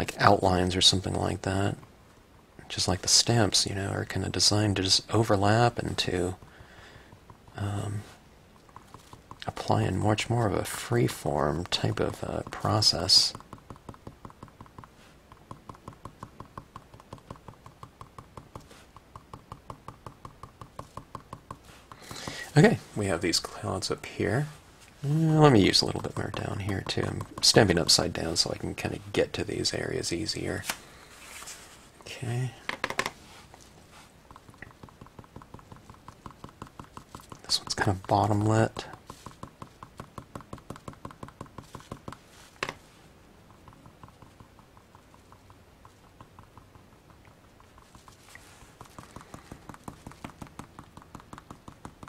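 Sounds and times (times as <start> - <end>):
soft brushing hiss: 0.0 - 52.0
stylus tapping on cardstock: 8.7 - 9.6, 11.1 - 22.4, 25.6 - 28.8, 32.7 - 33.2, 34.3 - 42.9, 43.5 - 52.0.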